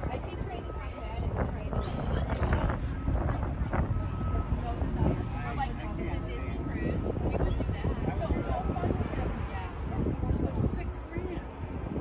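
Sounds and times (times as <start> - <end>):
people talking indistinctly: 0.0 - 12.0
wind buffeting microphone: 0.0 - 12.0.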